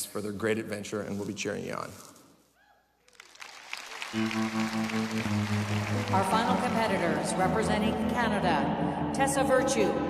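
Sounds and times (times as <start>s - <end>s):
audience applause: 3.1s - 7.2s.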